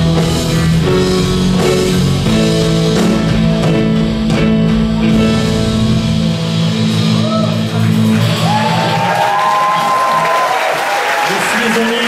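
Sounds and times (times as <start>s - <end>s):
rock band held chord: 0.0s - 10.8s
audience cheering and applauding: 7.2s - 12.0s.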